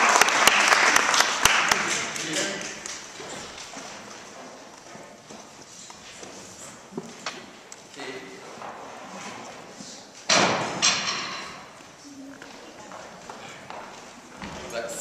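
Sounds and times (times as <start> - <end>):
children chattering: 11.9 - 13.8.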